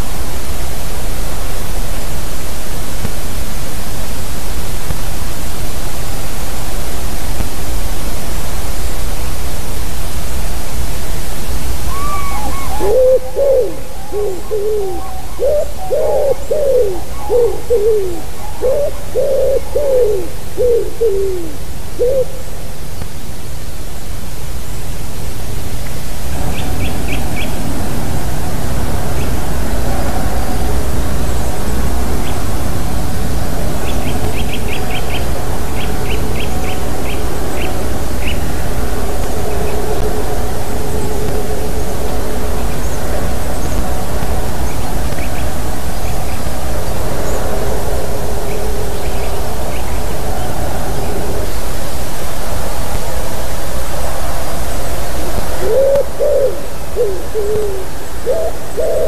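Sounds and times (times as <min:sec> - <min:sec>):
steady hiss: 0:00.0 - 0:59.0
pigeon cooing: 0:11.9 - 0:22.4, 0:55.6 - 0:59.0.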